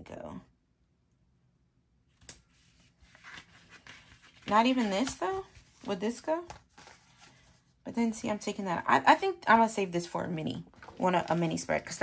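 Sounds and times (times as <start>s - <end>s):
paper rustling: 2.1s - 7.7s, 10.7s - 12.0s.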